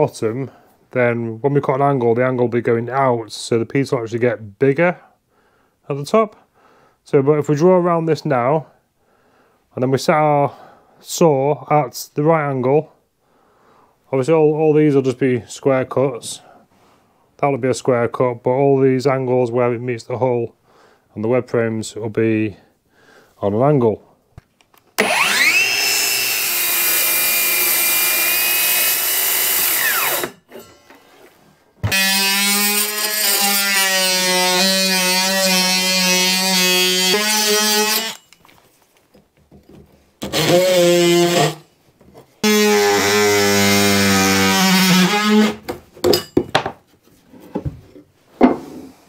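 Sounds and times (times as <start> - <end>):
circular saw whining: 25.0 - 30.4
jigsaw buzzing: 25.0 - 30.4, 31.8 - 38.2, 40.2 - 41.6, 42.4 - 45.6
wood knocks and clatters: 45.6 - 46.8, 47.4 - 48.9.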